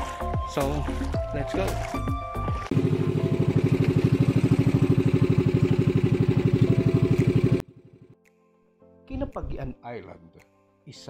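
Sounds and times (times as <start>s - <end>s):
boat engine chugging: 2.6s - 8.1s.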